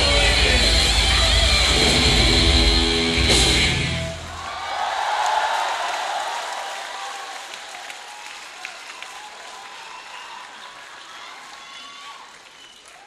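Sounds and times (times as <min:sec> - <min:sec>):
audience applauding and cheering: 0:00.0 - 0:13.0.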